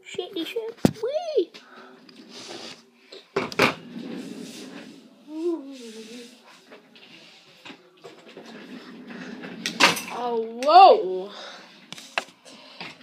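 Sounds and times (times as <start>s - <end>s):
rustling of things on a desk: 5.8s - 10.2s.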